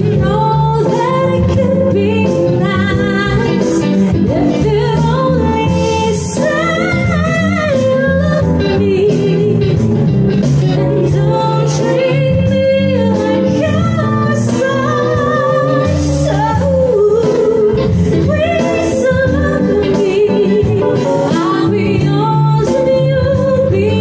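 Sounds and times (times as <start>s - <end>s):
keyboard: 0.0s - 24.0s
woman singing into a microphone: 0.0s - 24.0s.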